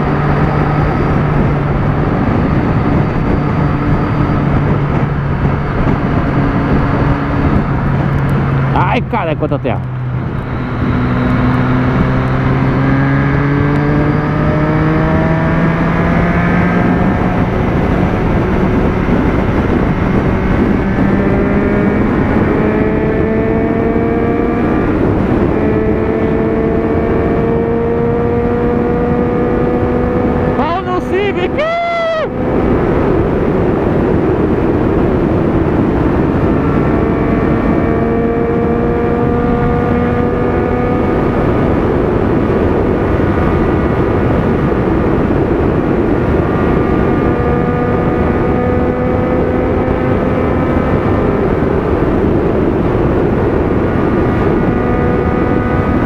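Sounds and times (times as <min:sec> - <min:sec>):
motorcycle engine at speed: 0:00.0 - 0:56.0
wind noise on camera: 0:00.0 - 0:56.0.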